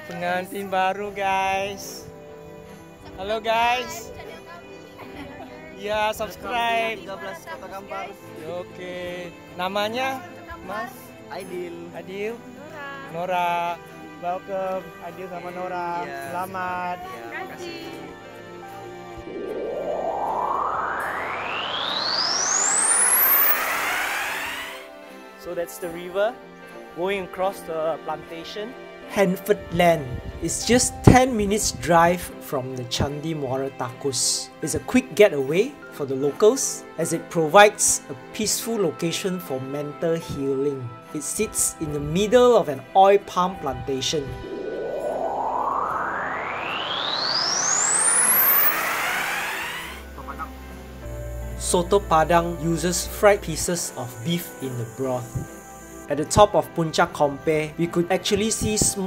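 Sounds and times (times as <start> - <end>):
background music: 0.0 - 59.0
rising whoosh: 18.6 - 24.9, 43.8 - 50.1.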